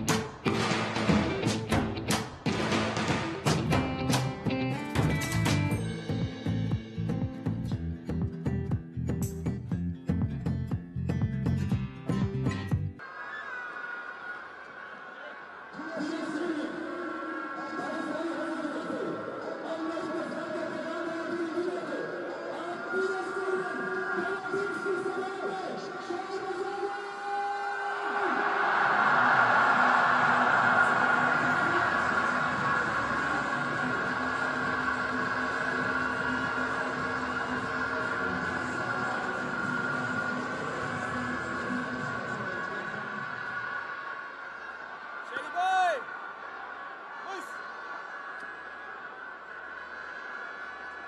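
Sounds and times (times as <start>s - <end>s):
crowd chanting and singing: 28.1s - 45.4s.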